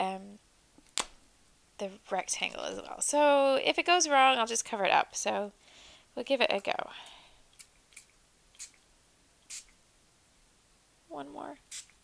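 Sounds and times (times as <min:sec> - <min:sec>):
spray bottle spritzes: 0:09.5 - 0:09.7.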